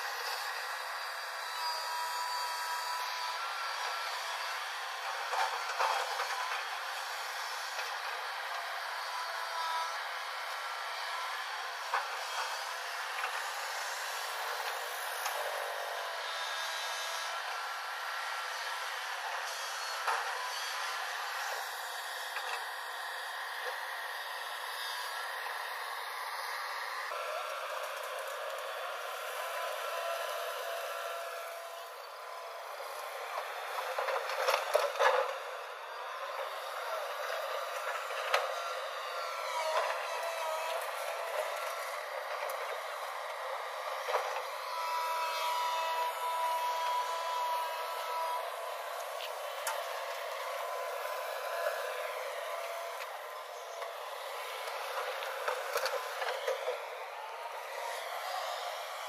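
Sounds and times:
excavator engine and hydraulics: 0.0 - 59.0.

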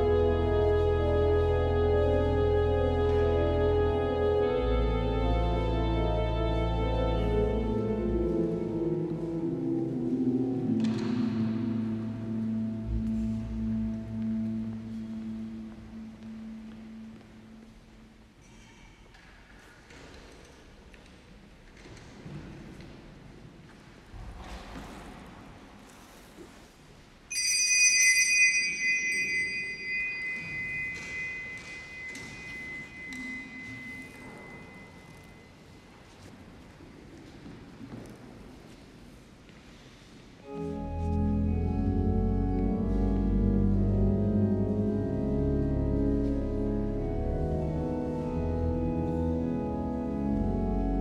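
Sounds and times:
low ringing musical tone: 27.3 - 35.8.

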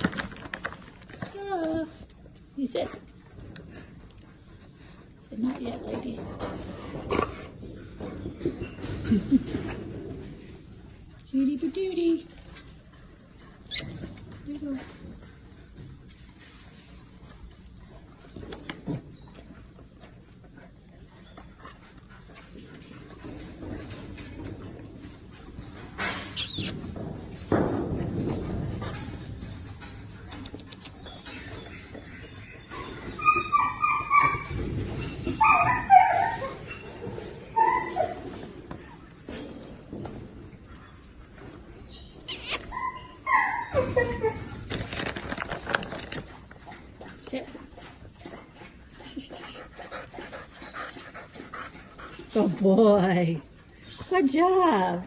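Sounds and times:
dog whining and yipping: 26.3 - 26.7, 32.4 - 38.5, 41.8 - 44.8
dog whimpering softly: 35.3 - 38.4.

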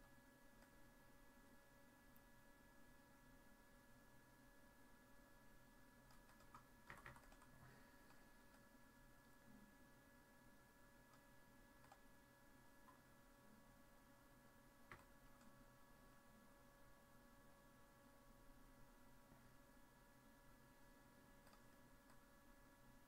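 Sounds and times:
faint steady hum: 0.0 - 23.0
keyboard and mouse clicks: 6.0 - 8.6, 11.8 - 12.1, 14.8 - 15.5, 21.4 - 22.3.

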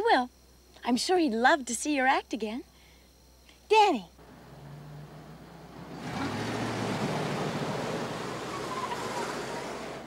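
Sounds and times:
car driving by: 4.2 - 10.0.

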